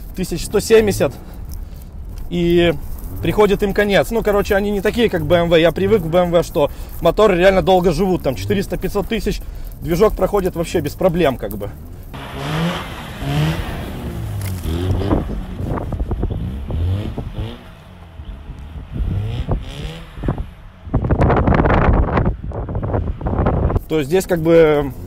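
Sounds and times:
rotary engine revving: 0.0s - 23.8s
loud rushing noise: 12.2s - 17.7s.

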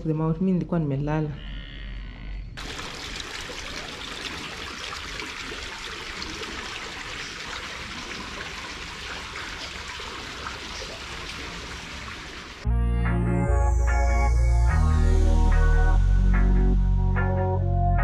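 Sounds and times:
water rushing down rock channel: 2.6s - 12.6s
electronic music: 12.6s - 18.0s.

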